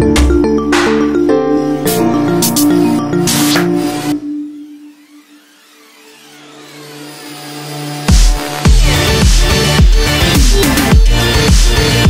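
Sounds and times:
held synth notes: 0:00.0 - 0:09.2
synth riser with pitch glides: 0:01.4 - 0:08.7.

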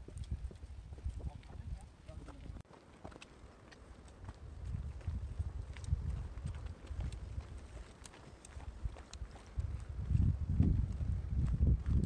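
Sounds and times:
footsteps on rocky path: 0:00.0 - 0:12.0
low rumble on microphone: 0:08.8 - 0:12.0.

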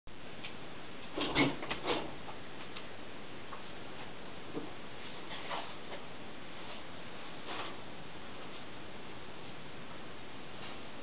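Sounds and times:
steady background hiss: 0:00.1 - 0:11.0.

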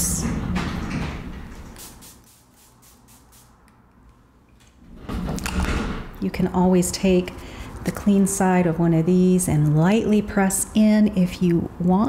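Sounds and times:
spray bottle misting hiss: 0:01.7 - 0:03.6.

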